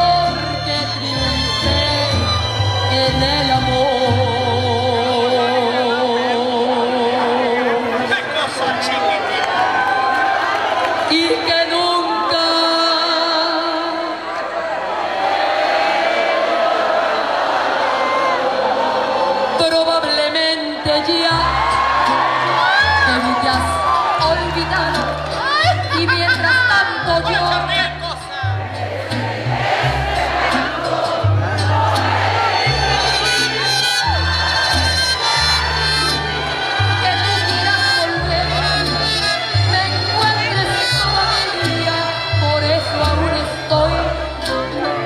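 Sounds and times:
bass guitar notes: 0:00.0 - 0:08.1, 0:21.3 - 0:45.0
audience applauding and cheering: 0:08.2 - 0:12.7, 0:20.9 - 0:45.0.

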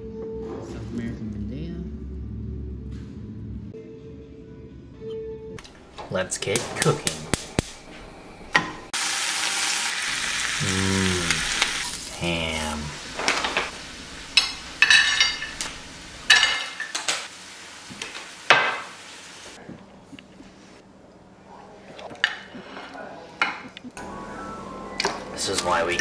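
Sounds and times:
sandwich sizzling in a pan: 0:08.9 - 0:19.6
utensils and dishes clattering: 0:14.3 - 0:17.3, 0:25.0 - 0:26.0.

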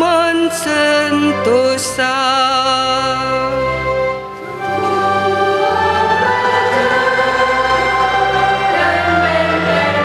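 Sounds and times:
choir singing: 0:04.2 - 0:10.0.

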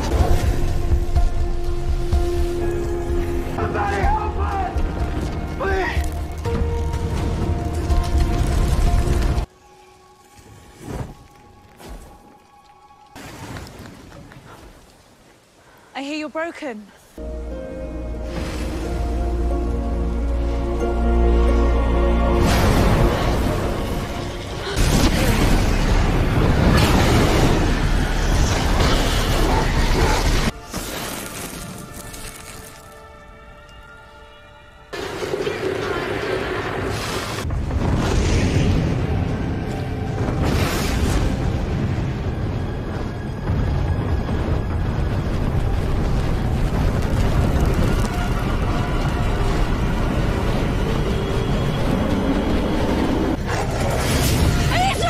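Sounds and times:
sharp fire crackles: 0:00.0 - 0:16.2, 0:22.4 - 0:33.3, 0:34.9 - 0:55.0
fire crackling rush: 0:00.0 - 0:33.8, 0:34.9 - 0:55.0
dramatic film score: 0:00.0 - 0:55.0.

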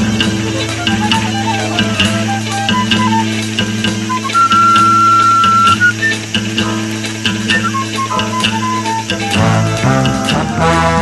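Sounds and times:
long held high note: 0:00.0 - 0:06.2
plucked guitar music over beat: 0:00.0 - 0:11.0.

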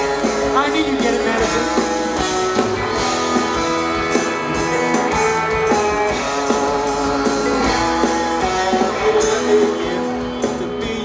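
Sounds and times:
electric guitar: 0:00.0 - 0:11.0
rock band playing live: 0:00.0 - 0:11.0.

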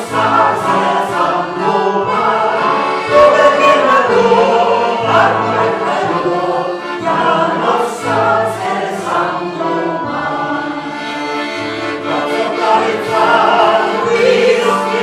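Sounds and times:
congregation singing: 0:00.0 - 0:15.0.

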